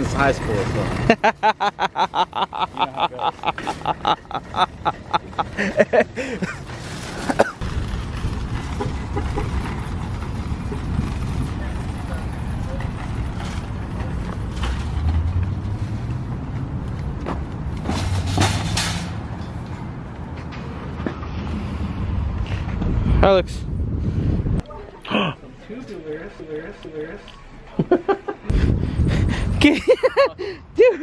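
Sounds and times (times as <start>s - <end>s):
shopping cart rattling over asphalt: 6.5s - 15.3s.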